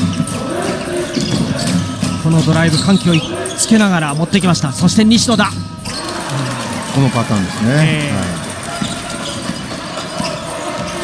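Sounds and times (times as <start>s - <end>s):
gymnasium crowd noise: 0.0s - 11.0s.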